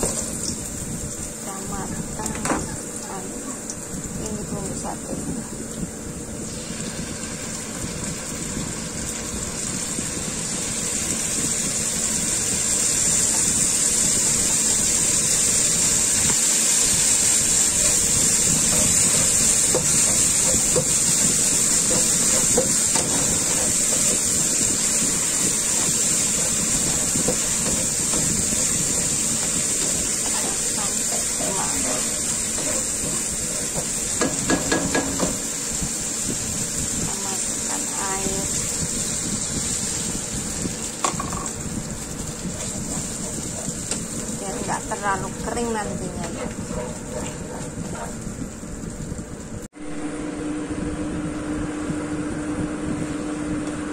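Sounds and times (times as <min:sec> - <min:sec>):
garlic sizzling in hot oil: 0:00.0 - 0:50.1.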